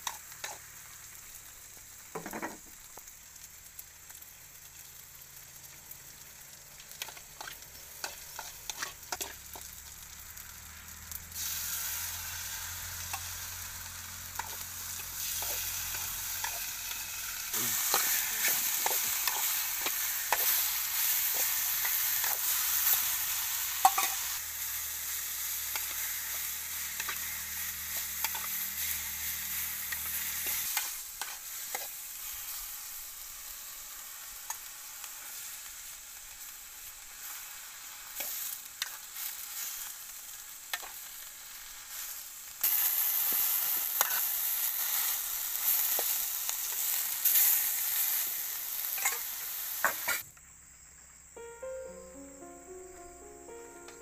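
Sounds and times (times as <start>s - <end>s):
food sizzling in a wok: 0.0s - 54.0s
spatula scraping metal wok: 7.4s - 9.7s.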